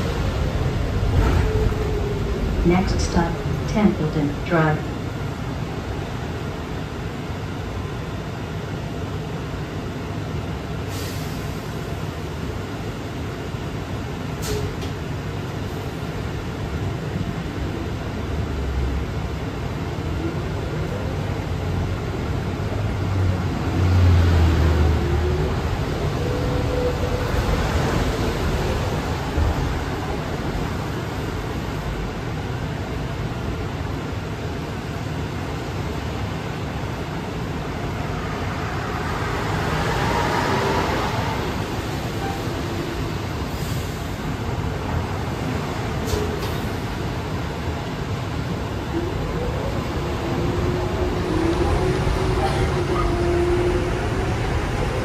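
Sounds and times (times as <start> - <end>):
road and rolling noise: 0.0 - 55.0.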